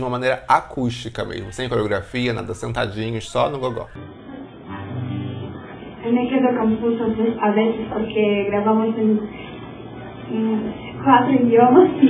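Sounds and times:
acoustic guitars playing: 0:00.0 - 0:12.0.

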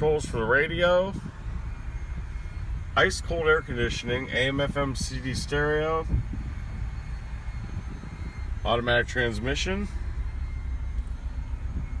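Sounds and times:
car engine idling in cabin: 0:00.0 - 0:12.0.

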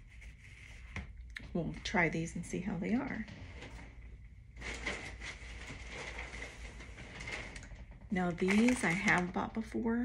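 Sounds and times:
crackly rustling of items: 0:00.1 - 0:10.0.

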